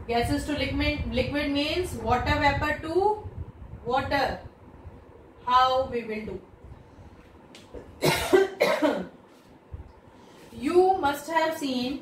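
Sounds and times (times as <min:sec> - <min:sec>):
woman coughing: 0:08.0 - 0:09.2.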